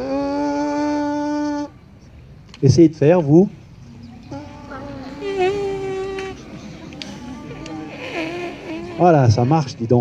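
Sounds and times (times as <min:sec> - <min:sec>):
voices: 0:00.0 - 0:10.0
people buzzing their lips: 0:04.1 - 0:09.6.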